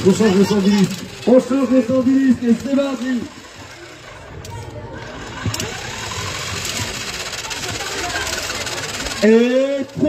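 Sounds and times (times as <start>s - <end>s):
motor whirring rattle: 0.0s - 10.0s.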